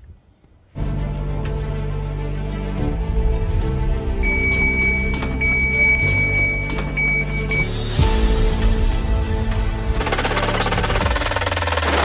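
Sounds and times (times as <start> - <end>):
background music low notes: 0.5 - 11.9
high electronic beep: 4.2 - 7.8.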